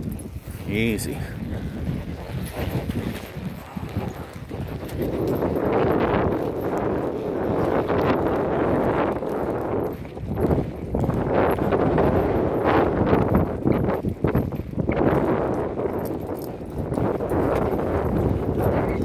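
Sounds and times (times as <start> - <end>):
horse hoofbeats on dirt: 0.0 - 19.0
wind buffeting microphone: 0.0 - 19.0.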